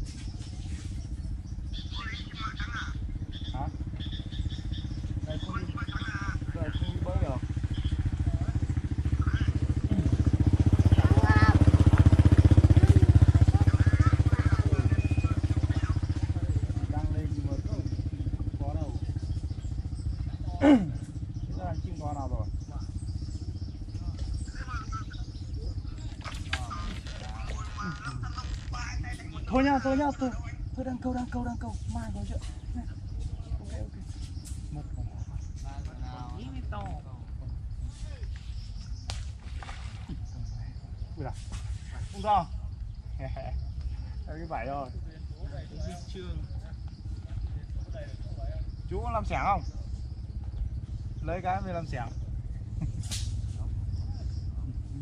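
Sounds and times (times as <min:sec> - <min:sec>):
small engine passing: 0:00.0 - 0:37.8, 0:38.6 - 0:55.0
faint voices: 0:01.7 - 0:38.4.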